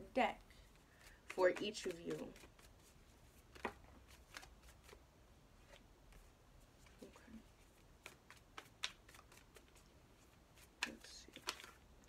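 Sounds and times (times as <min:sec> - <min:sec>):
cards being shuffled: 0:00.7 - 0:05.0, 0:05.6 - 0:11.9.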